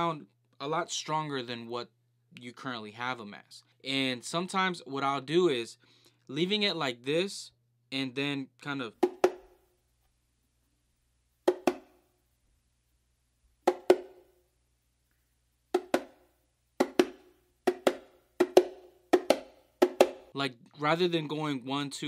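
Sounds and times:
bongo double slaps: 9.0 - 9.5, 11.5 - 11.9, 13.6 - 14.2, 15.7 - 16.2, 16.8 - 20.3.

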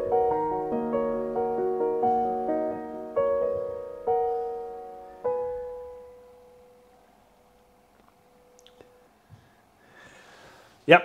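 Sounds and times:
piano chord ringing out: 0.0 - 9.2.

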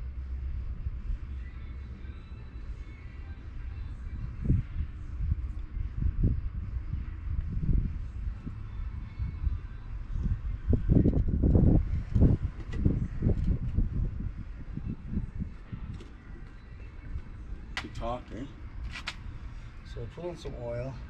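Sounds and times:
wind buffeting microphone: 4.1 - 16.8.

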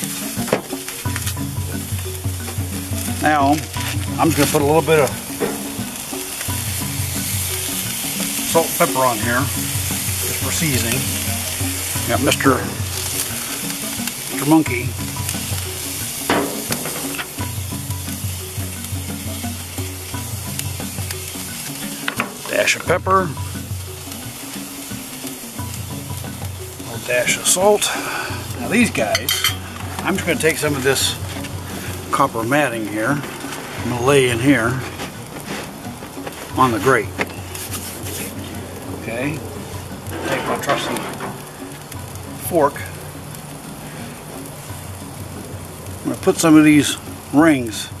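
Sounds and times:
patties sizzling on a grill: 0.0 - 48.0.

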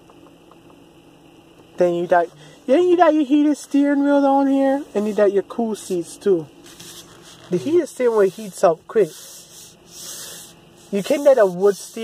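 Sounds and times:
hand rubbing steering wheel: 4.4 - 12.0.

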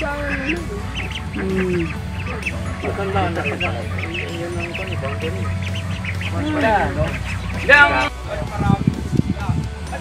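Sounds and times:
steady low hum: 0.0 - 8.1
ducks quacking: 0.0 - 8.4.

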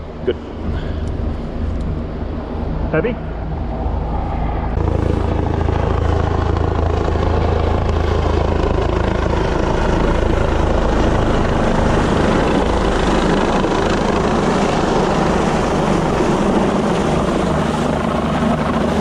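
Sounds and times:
helicopter rotor thrum: 0.0 - 19.0.

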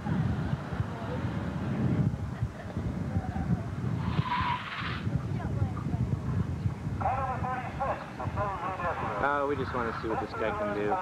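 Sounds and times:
car tyres squealing: 4.0 - 5.0.

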